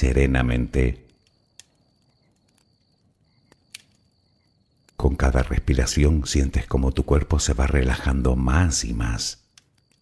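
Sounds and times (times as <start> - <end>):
campfire crackling: 0.0 - 10.0.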